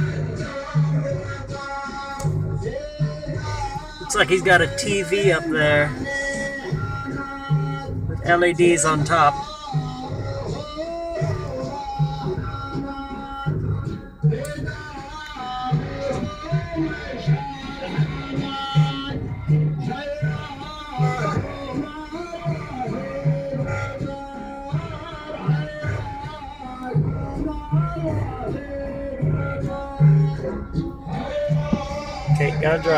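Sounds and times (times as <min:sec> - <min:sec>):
steady bass beat: 0:00.0 - 0:32.9.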